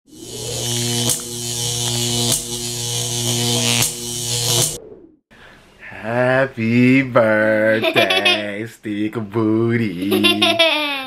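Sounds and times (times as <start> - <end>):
loud low buzz: 0.1 - 5.2.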